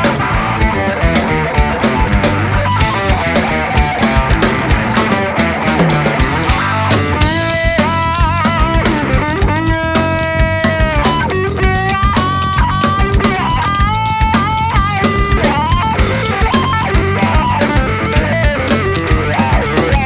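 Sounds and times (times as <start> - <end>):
drum kit groove: 0.0 - 20.0
lead guitar solo: 0.0 - 20.0.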